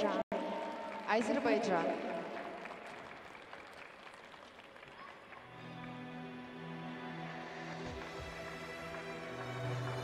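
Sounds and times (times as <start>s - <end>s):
crowd applause: 0.3s - 10.0s
background music with low notes: 5.6s - 10.0s.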